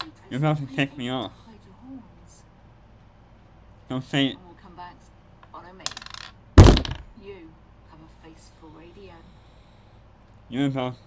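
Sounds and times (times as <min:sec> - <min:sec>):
loud heavy thump: 0:06.6 - 0:07.1.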